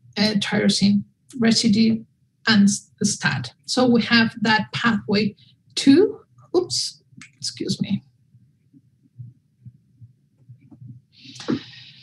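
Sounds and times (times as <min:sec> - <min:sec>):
faint low dull thumps: 0:08.8 - 0:11.1.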